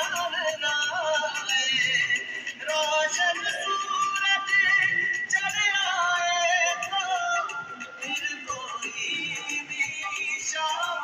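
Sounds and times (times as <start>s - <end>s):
patriotic song with singing: 0.0s - 11.0s.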